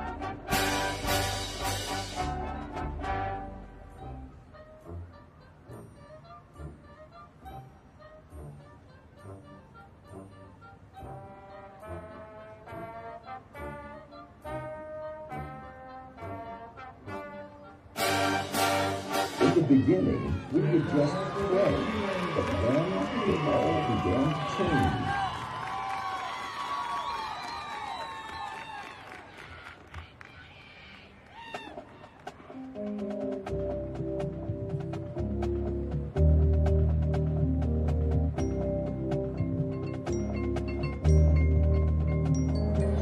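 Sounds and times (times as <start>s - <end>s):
marching band brass chords: 0.0s - 25.7s, 31.8s - 43.0s
faint crowd: 17.6s - 33.2s.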